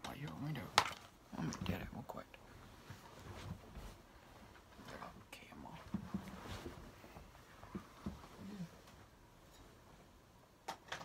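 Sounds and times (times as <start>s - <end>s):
bedding rustling: 1.0s - 10.6s.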